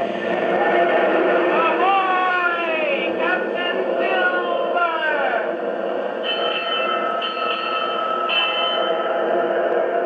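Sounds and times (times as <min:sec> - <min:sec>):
steady held tone: 0:00.0 - 0:10.0.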